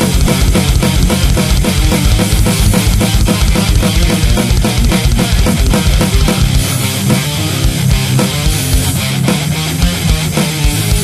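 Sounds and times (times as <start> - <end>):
distorted electric guitars: 0.0 - 11.0
fast kick drum beats: 0.0 - 11.0.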